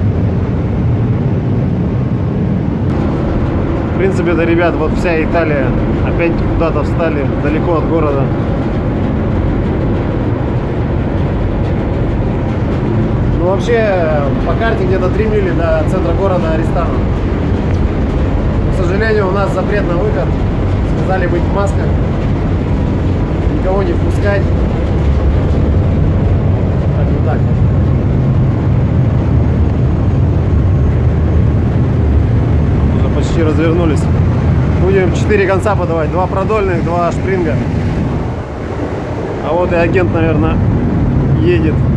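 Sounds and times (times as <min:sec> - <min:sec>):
cargo ship machinery rumble: 0:00.0 - 0:41.9
wind buffeting microphone: 0:00.0 - 0:41.9.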